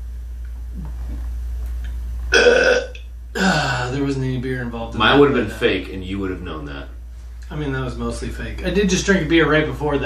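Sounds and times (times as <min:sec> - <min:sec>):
man burping: 0:02.3 - 0:03.9.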